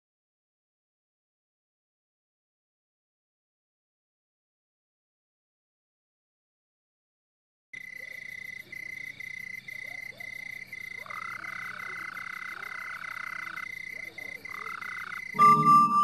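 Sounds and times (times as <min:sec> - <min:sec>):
high chirping call: 0:14.5 - 0:16.0.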